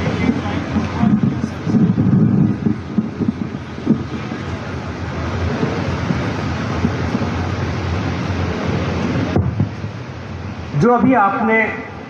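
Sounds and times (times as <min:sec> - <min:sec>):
wind buffeting microphone: 0:00.0 - 0:11.3.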